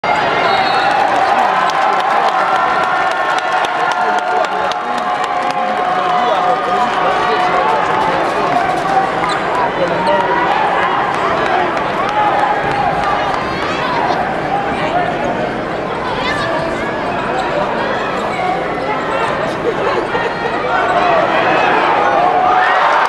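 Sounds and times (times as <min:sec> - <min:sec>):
crowd yelling and cheering: 0:00.0 - 0:23.0.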